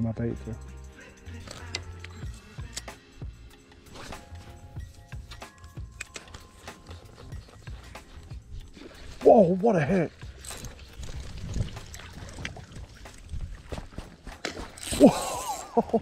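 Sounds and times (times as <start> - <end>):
quiet background music: 0.0 - 16.0
faint scattered clicks: 5.3 - 8.0.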